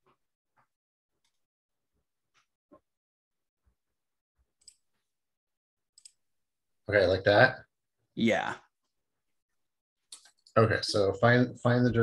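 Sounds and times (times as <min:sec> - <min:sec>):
man speaking: 0:06.9 - 0:08.6, 0:10.6 - 0:12.0.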